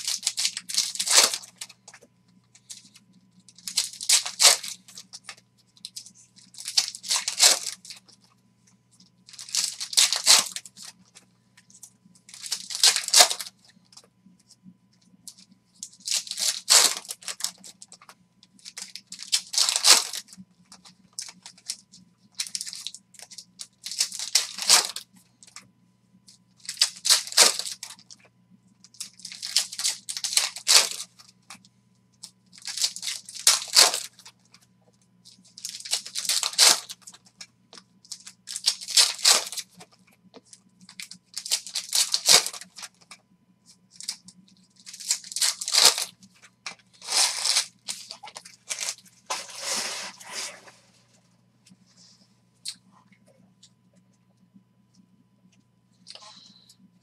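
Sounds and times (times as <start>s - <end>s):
foil wrappers tearing and crinkling: 0.0s - 2.0s, 2.6s - 8.2s, 9.3s - 11.2s, 11.8s - 14.0s, 15.3s - 25.6s, 26.6s - 28.2s, 28.8s - 31.6s, 32.5s - 34.5s, 35.3s - 43.2s, 43.9s - 50.6s.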